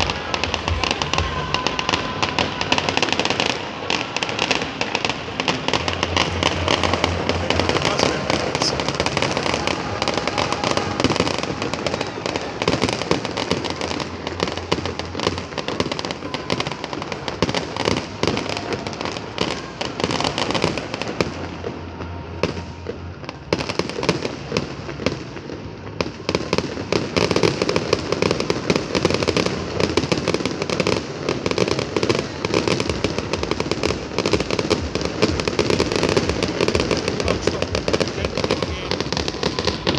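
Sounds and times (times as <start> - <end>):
fireworks bangs and crackles: 0.0 - 39.9.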